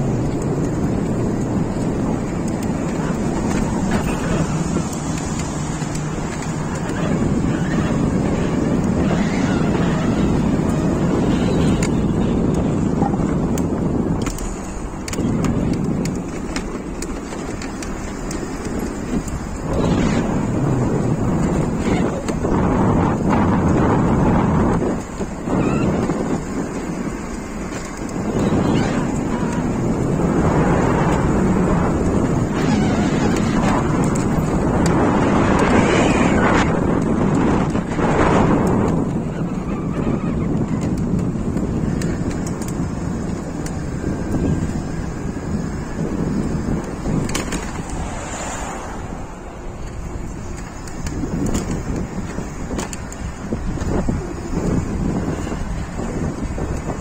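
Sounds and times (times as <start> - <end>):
cars passing: 0.0 - 57.0
wind buffeting microphone: 0.0 - 57.0.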